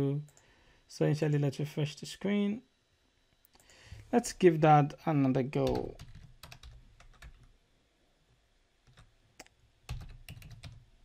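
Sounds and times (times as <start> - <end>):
computer keyboard keystrokes: 5.6 - 7.5, 8.9 - 10.8.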